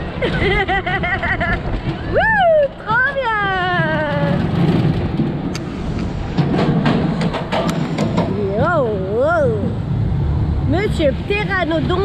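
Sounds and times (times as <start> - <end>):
low rumble of moving ride: 0.0 - 12.0
rider whooping: 1.9 - 4.4.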